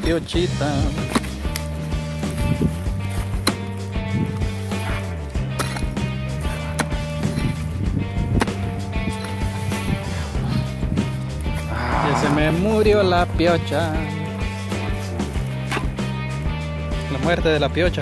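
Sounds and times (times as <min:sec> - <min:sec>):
background music with steady chords: 0:00.0 - 0:18.0
pickaxe striking hard ground: 0:00.8 - 0:10.0.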